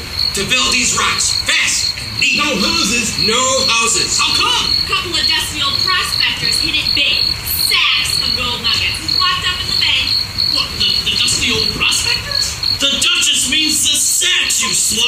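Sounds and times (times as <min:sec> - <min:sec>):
high pulsing chirp: 0:00.0 - 0:15.0
indistinct voices: 0:00.0 - 0:15.0.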